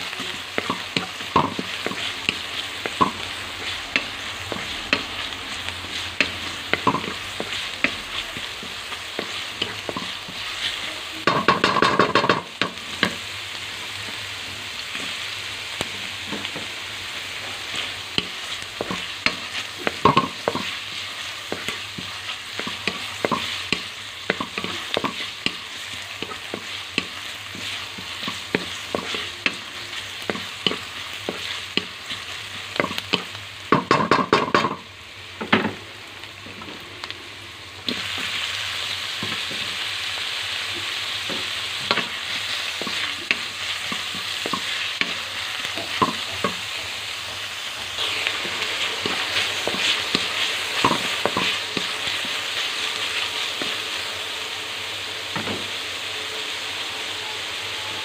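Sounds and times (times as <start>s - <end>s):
food sizzling in oil: 0.0s - 58.0s
wooden spatula scraping wok: 0.0s - 58.0s.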